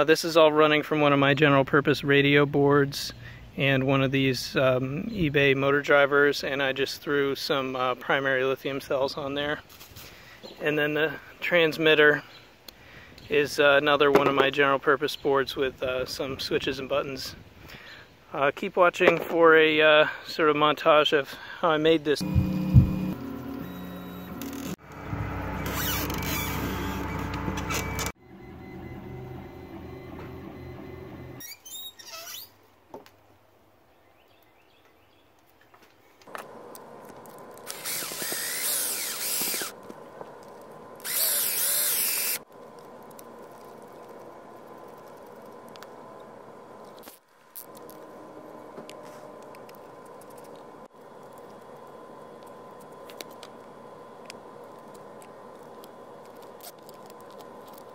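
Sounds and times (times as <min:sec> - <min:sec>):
steady hum: 0:22.2 - 0:31.4, 0:36.3 - 0:57.9
printer stepper motors running: 0:25.5 - 0:31.4, 0:37.6 - 0:39.8
small power tool bursts: 0:37.6 - 0:39.8, 0:41.0 - 0:42.4.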